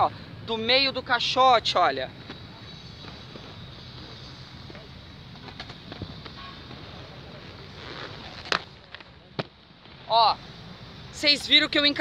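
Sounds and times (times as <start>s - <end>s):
outdoor background noise: 0.0s - 12.0s
inline skate clacking on concrete: 8.4s - 9.1s.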